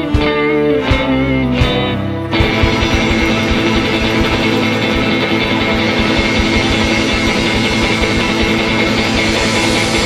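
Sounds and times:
instrumental rock band: 0.0 - 10.0.

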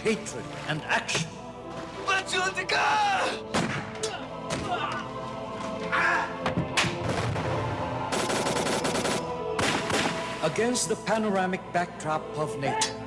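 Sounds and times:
film music: 0.0 - 13.0
gunshots: 7.0 - 10.3.

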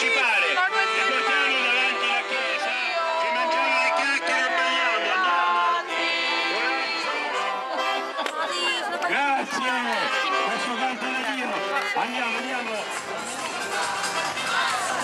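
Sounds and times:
accordion music: 0.0 - 15.0
crowd chatter: 0.0 - 15.0.

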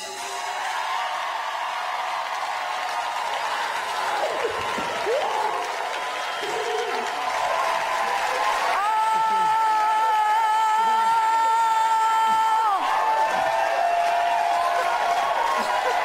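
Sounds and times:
audience applauding and cheering: 0.0 - 16.0.

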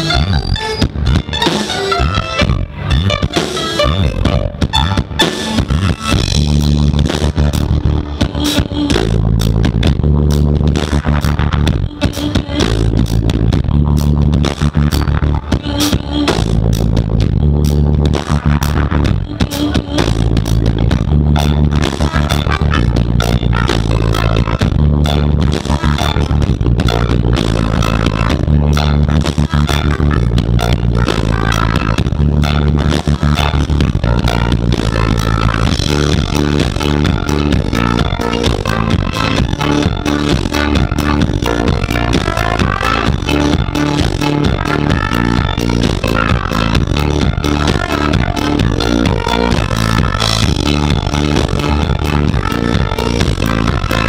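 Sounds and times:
trumpet: 0.0 - 7.8, 18.2 - 54.0
amplified mandolin: 0.0 - 9.6, 19.0 - 54.0
bass line: 0.0 - 54.0
drum kit beat: 0.0 - 54.0
swing band playing: 0.0 - 54.0.

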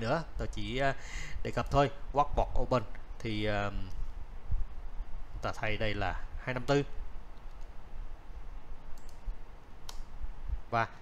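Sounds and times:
man speaking: 0.0 - 3.9, 5.4 - 7.0, 10.7 - 11.0
faint click: 9.0 - 9.2
keyboard keystroke: 9.0 - 9.2.

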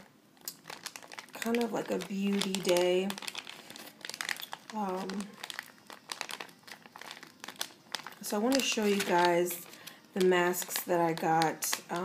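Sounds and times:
crinkly packaging crackling: 0.0 - 12.0.

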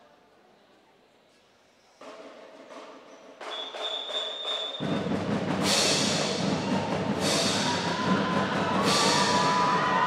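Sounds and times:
deep drums: 4.8 - 10.0.

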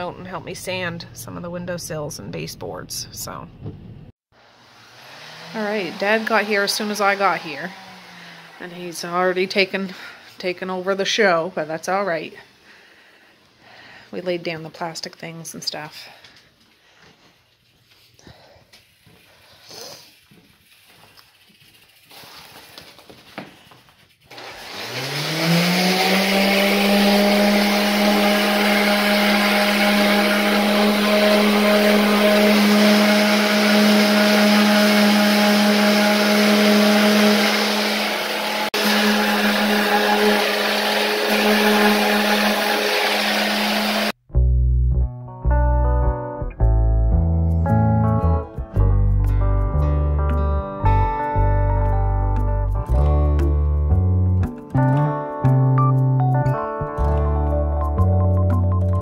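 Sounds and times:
electric sander motor: 4.4 - 10.1, 24.3 - 44.2
sanding hiss on wood: 18.8 - 23.0.

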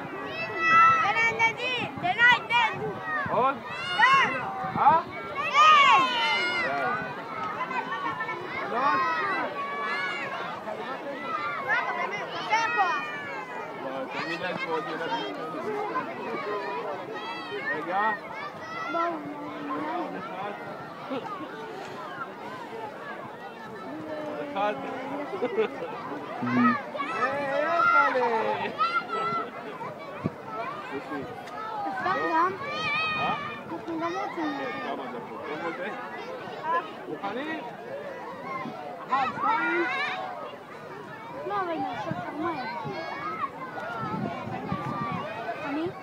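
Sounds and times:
children chattering and calling out: 0.0 - 46.0
playground bustle: 0.0 - 46.0.

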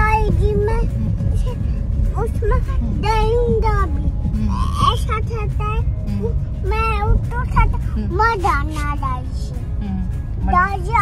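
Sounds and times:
toddler sing-song voice: 0.0 - 5.8
car interior rumble: 0.0 - 11.0.

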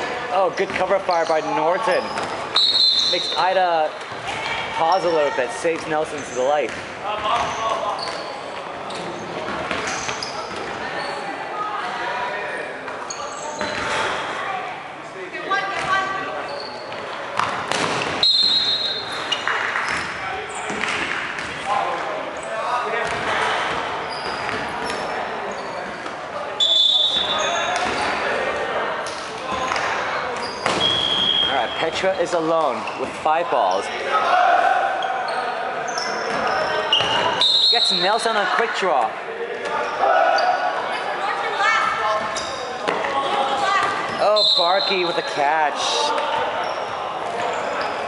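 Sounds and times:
balls thudding and bouncing: 0.5 - 1.0
players shouting: 33.4 - 35.4, 36.2 - 42.1.

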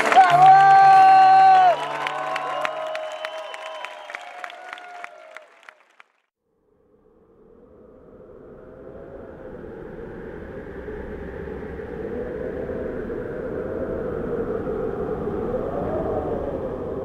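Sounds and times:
rumbling drone with wavering hum: 6.6 - 17.0.

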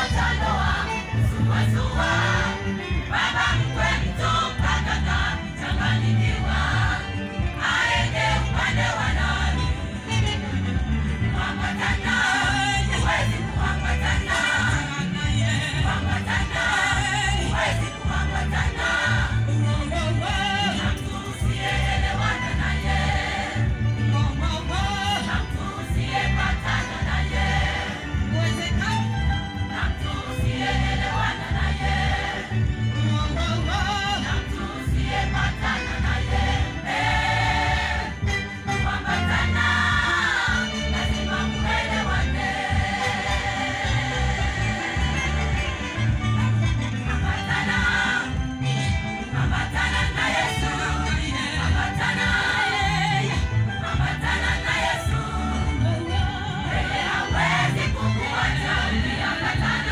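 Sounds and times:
women's choir singing: 0.0 - 10.0, 11.0 - 23.9, 24.9 - 45.9, 47.0 - 48.6, 49.2 - 59.9
heavy bass accompaniment: 0.0 - 59.9.

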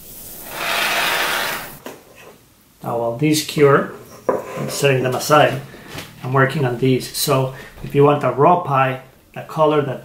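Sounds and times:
spray foam can hissing: 0.0 - 1.8.

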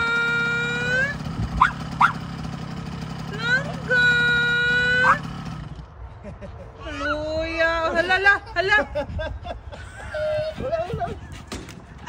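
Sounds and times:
dirt bike engine idling: 0.0 - 6.0.

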